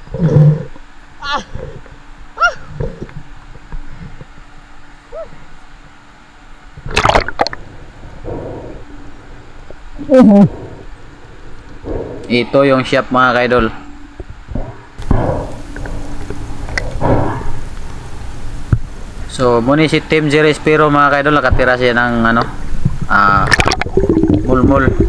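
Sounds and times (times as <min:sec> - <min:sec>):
water sloshing and splashing: 0:06.8 - 0:07.7, 0:22.4 - 0:25.0
loud splash: 0:06.9 - 0:07.5
breathy voice-like sounds: 0:16.8 - 0:17.6.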